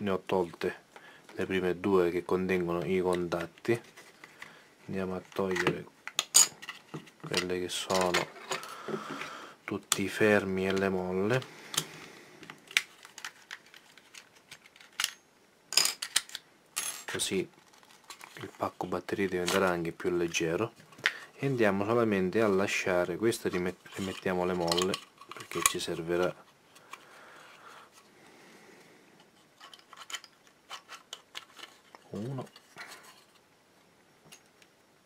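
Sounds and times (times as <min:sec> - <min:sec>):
plastic parts rubbing: 0:10.6 - 0:15.2, 0:17.1 - 0:28.1, 0:29.2 - 0:33.5
plastic clicks and rattles: 0:15.8 - 0:16.4.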